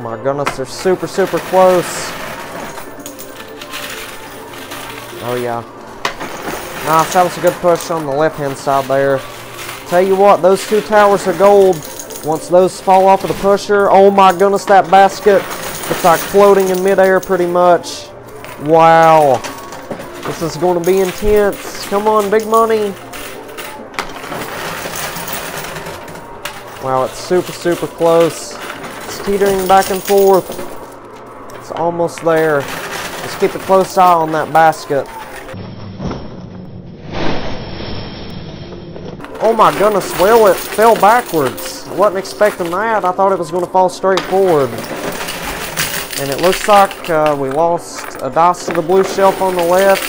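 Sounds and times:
background music: 0.0s - 35.6s, 39.2s - 50.0s
coins clicking and sliding: 0.7s - 35.6s, 39.2s - 50.0s.

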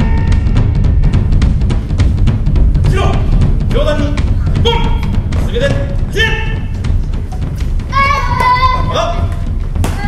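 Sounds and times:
children shouting kiai: 7.9s - 10.0s.

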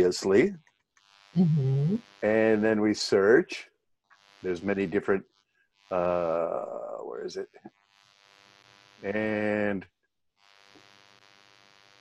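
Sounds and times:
person speaking: 0.0s - 0.6s, 1.4s - 3.6s, 4.5s - 5.2s, 6.0s - 7.4s, 9.1s - 9.8s.

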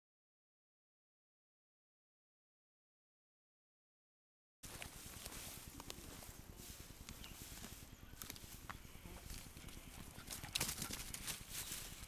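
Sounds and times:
dry leaves crackling under paws: 4.7s - 12.0s.

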